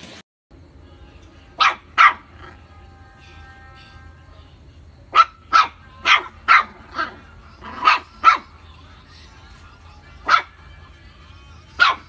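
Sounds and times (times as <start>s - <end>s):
puppy barking: 1.6s - 2.6s, 5.1s - 8.6s, 10.2s - 10.6s, 11.8s - 12.0s.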